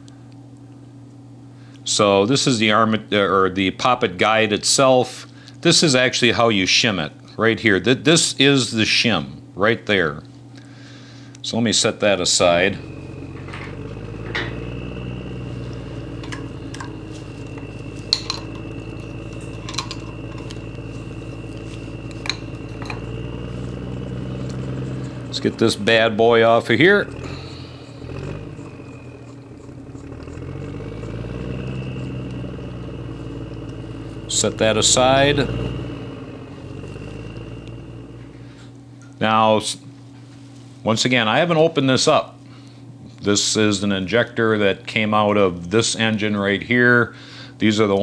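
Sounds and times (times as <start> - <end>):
low hum with high whine: 0.0 - 48.0
metal tools clicking and clinking: 19.4 - 20.6.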